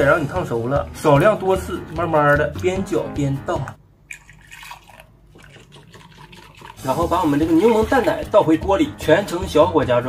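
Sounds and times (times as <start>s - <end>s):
liquid trickle: 4.1s - 8.4s
whisk swishing: 4.5s - 8.4s.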